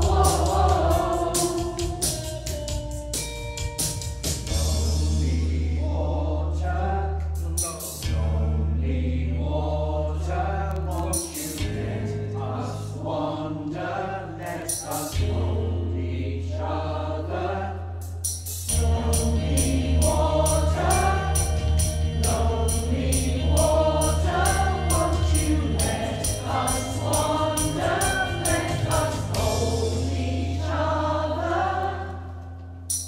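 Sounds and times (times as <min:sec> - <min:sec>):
choir singing: 0:00.0 - 0:02.5, 0:04.5 - 0:07.4, 0:08.0 - 0:18.0, 0:18.7 - 0:32.6
steady beat: 0:00.0 - 0:05.1, 0:18.1 - 0:30.3
sustained bass accompaniment: 0:00.0 - 0:33.0.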